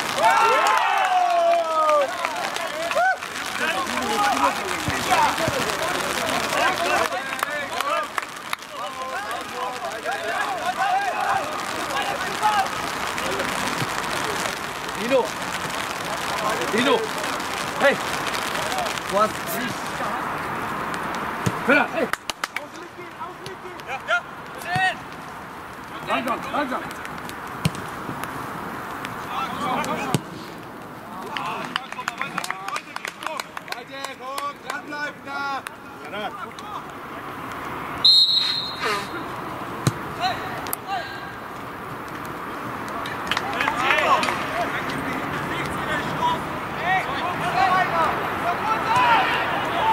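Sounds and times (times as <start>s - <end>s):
people cheering and shouting: 0.0s - 19.1s, 46.0s - 49.9s
referee's whistle blast: 38.0s - 39.2s.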